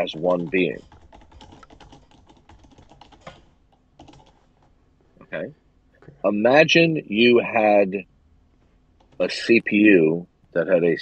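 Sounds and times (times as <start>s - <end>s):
computer keyboard typing: 0.0s - 4.7s.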